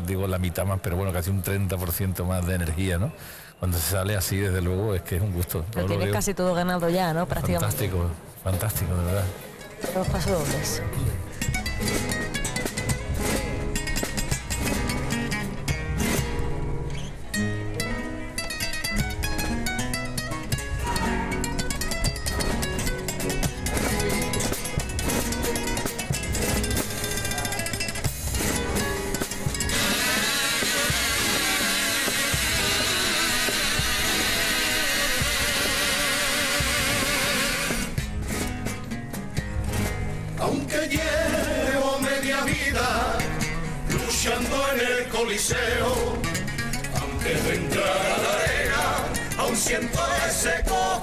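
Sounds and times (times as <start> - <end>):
classical guitars playing: 5.8 - 51.0
buzzing wavering tone: 29.4 - 38.0.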